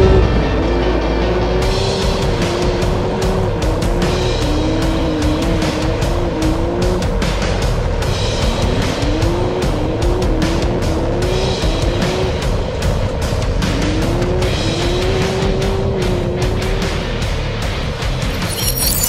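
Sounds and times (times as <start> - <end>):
engine revving hard: 0.0 - 17.2
music with steady beat: 0.0 - 18.3.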